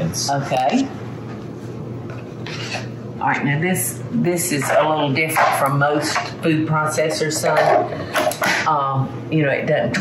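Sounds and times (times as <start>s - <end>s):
items rubbing on kitchen counter: 2.4s - 2.9s, 4.5s - 6.3s
scrape on counter: 2.4s - 2.9s.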